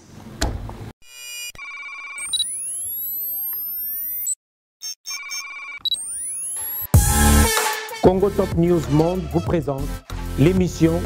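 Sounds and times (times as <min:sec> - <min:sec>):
synthesized tones and pings: 0:01.1 - 0:07.0
music: 0:06.9 - 0:11.0.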